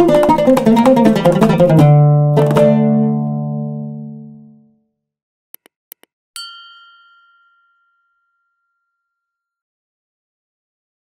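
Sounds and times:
bright bell ding: 6.4s - 9.5s.

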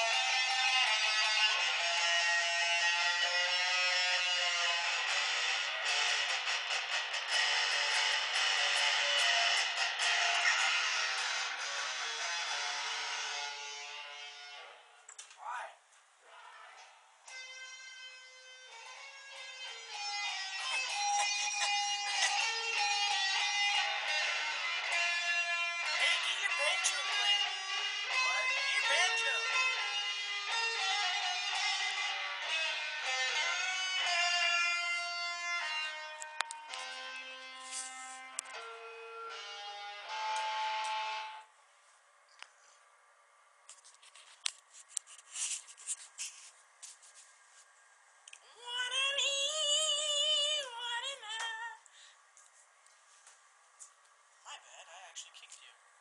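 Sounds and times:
guitar strumming: 0.0s - 14.7s, 17.3s - 41.5s.

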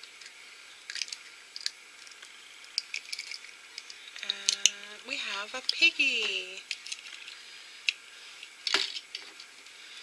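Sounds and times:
toy egg shell cracking: 0.0s - 4.8s, 5.6s - 9.5s.

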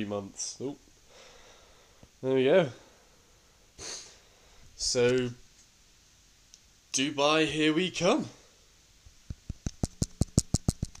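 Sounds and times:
rapid sharp knocks: 9.5s - 11.0s.

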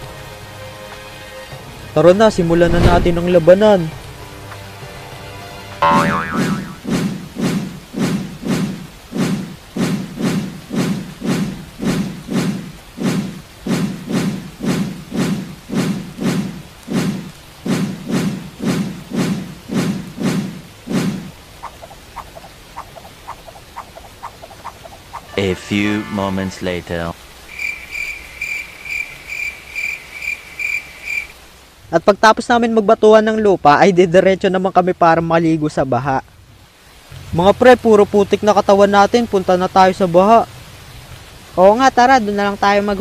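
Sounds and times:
cartoon thud effects: 2.7s - 3.2s, 5.8s - 7.1s.

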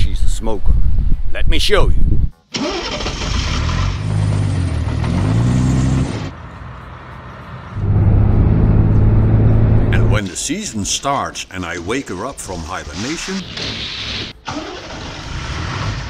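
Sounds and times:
diesel engine exhaust: 6.9s - 10.2s.

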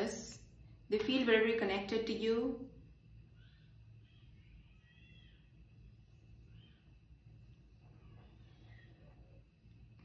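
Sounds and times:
low room hum: 0.0s - 10.0s
faint high chirps: 3.2s - 9.4s.

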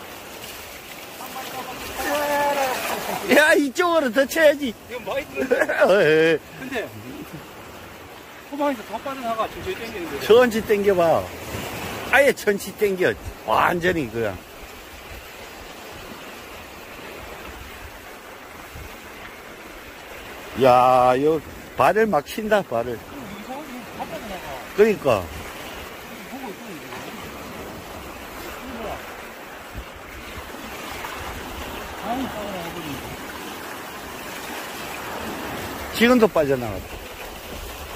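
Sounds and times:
shallow sea water washing: 0.0s - 37.9s
person calling out: 1.2s - 3.1s.

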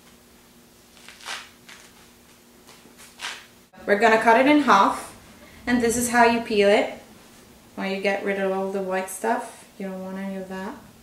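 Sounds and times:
fruit rind tearing: 0.9s - 3.5s.

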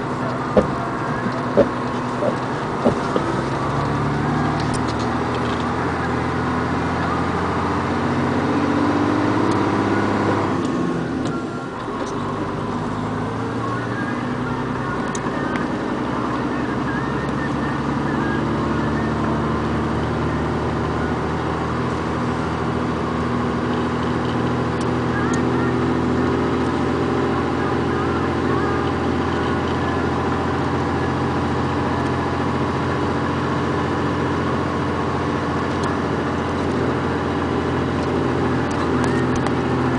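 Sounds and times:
vehicle engine running while driving: 0.0s - 39.9s.

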